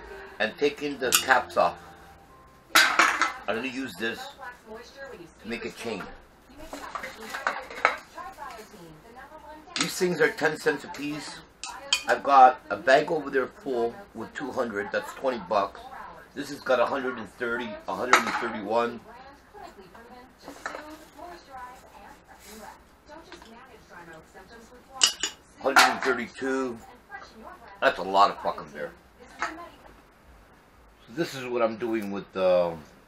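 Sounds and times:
aluminium cans clinking: 0:01.1 - 0:01.7, 0:02.7 - 0:03.5, 0:25.0 - 0:26.2
plastic bag rustling: 0:20.4 - 0:23.5.

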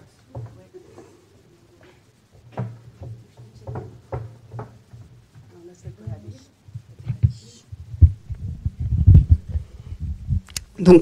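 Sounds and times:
microphone handling thumps: 0:01.8 - 0:10.8
woman speaking: 0:05.4 - 0:07.7.

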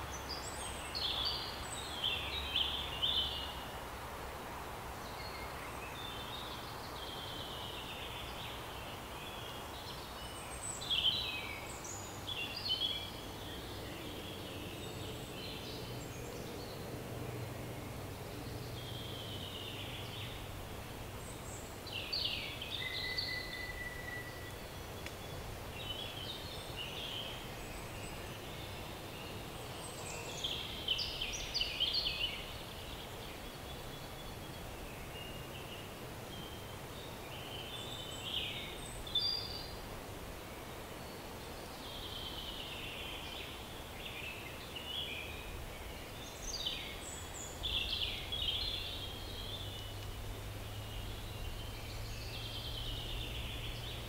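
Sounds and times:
faint background hiss: 0:00.0 - 0:54.0
songbirds chirping and trilling: 0:00.0 - 0:54.0.

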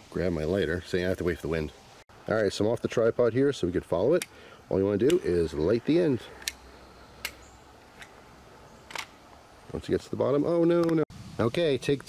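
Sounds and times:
faint low background noise: 0:00.0 - 0:12.0.

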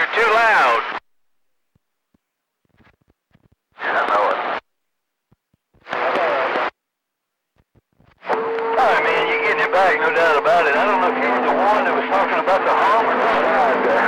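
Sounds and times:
man talking over radio: 0:00.0 - 0:01.0, 0:03.8 - 0:04.6, 0:05.9 - 0:06.7, 0:08.2 - 0:14.0
steady radio tone: 0:00.0 - 0:01.0, 0:03.8 - 0:04.6, 0:05.9 - 0:06.7, 0:08.2 - 0:14.0
faint radio static crackles: 0:00.0 - 0:14.0
garbled distant radio voice: 0:08.2 - 0:14.0.

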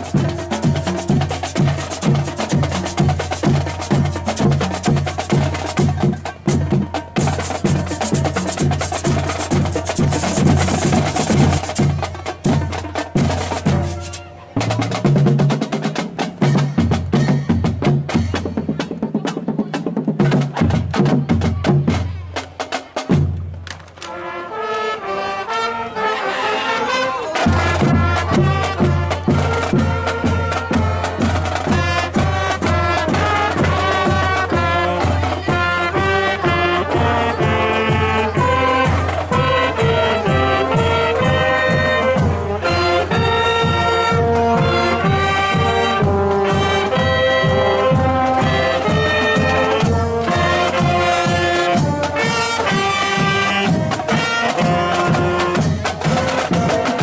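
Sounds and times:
brass and saxophones melody: 0:00.0 - 0:18.9, 0:24.0 - 0:57.0
bass and snare drums beating: 0:00.0 - 0:24.0, 0:27.4 - 0:57.0.

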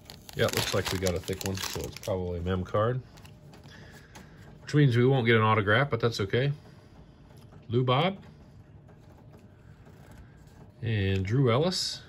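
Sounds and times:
trading cards rustling and clicking: 0:00.0 - 0:02.5
man talking: 0:00.3 - 0:03.1, 0:10.8 - 0:12.0.

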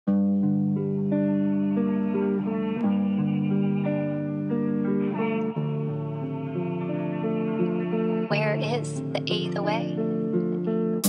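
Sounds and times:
hip-hop instrumental guitar-like sample: 0:00.1 - 0:11.0.

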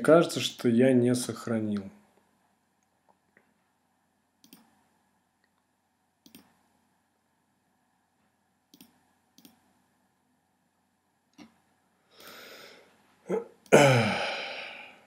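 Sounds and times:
faint computer mouse clicks: 0:04.4 - 0:04.8, 0:06.2 - 0:06.6, 0:08.7 - 0:09.6.

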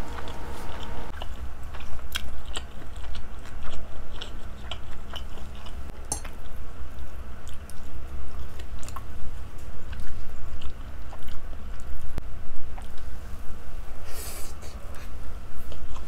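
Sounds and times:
chewing food: 0:00.1 - 0:13.1, 0:15.6 - 0:16.0.

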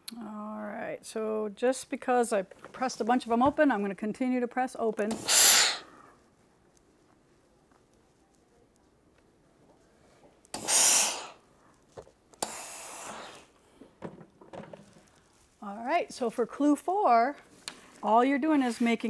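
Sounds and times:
steam iron hissing: 0:05.1 - 0:05.9, 0:10.6 - 0:11.4, 0:12.4 - 0:13.6.

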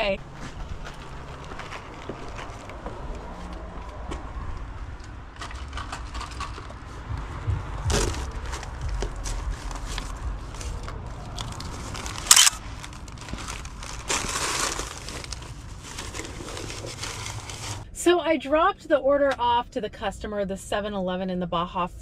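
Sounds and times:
low handling rumble: 0:00.0 - 0:22.0
foil bag rustling and crinkling: 0:00.4 - 0:02.9, 0:07.9 - 0:17.8.

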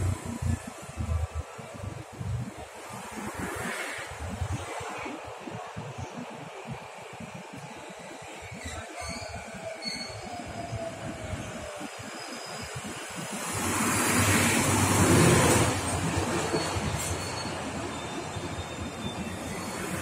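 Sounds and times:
electric train rumbling: 0:00.0 - 0:20.0.

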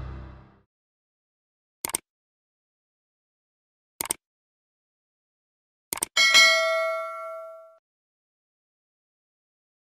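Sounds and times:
bright bell ding: 0:06.2 - 0:07.8.

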